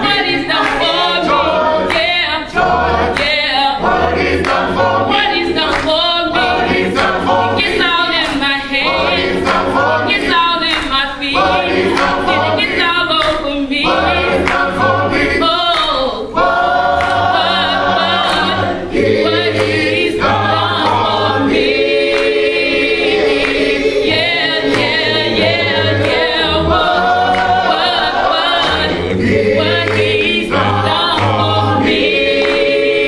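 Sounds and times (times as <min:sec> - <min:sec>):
gospel choir singing: 0:00.0 - 0:33.0
low held notes: 0:24.2 - 0:30.2.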